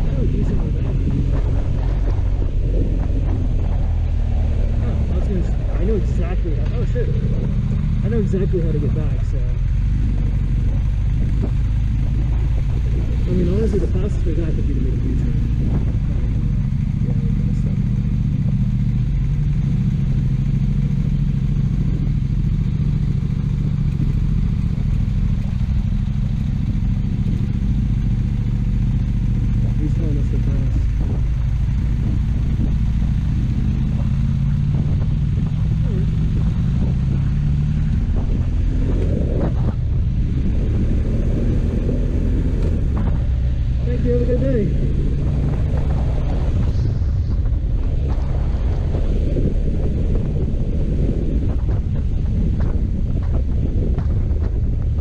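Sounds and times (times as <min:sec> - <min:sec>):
motorcycle engine accelerating: 0:00.0 - 0:55.0.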